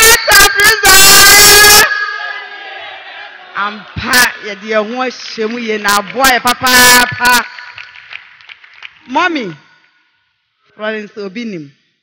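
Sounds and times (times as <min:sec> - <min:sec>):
distorted voice shouting: 0:00.0 - 0:02.1.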